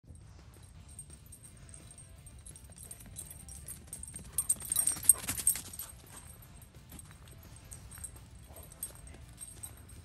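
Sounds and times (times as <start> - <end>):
dog paws running on dirt: 1.5 - 10.0.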